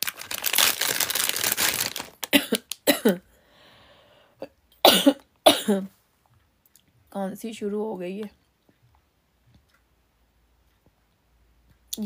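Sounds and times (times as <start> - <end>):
plastic packaging crinkling: 0.0 - 2.9
woman coughing: 2.3 - 3.2, 4.8 - 5.9.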